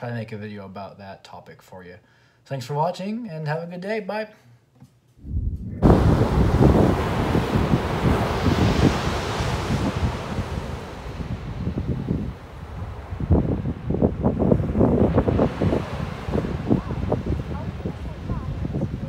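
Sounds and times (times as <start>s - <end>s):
wind buffeting microphone: 5.2s - 19.0s
small waves breaking on sand: 5.8s - 19.0s.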